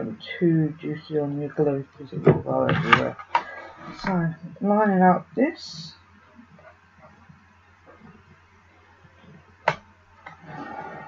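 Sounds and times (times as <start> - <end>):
card sliding and rubbing: 10.3 - 11.0.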